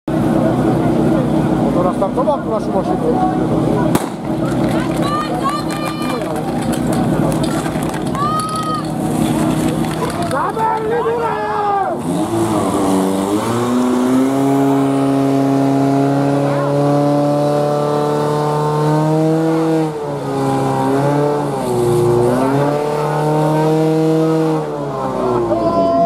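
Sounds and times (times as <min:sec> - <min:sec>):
fire-pump engine running: 0:00.1 - 0:11.2.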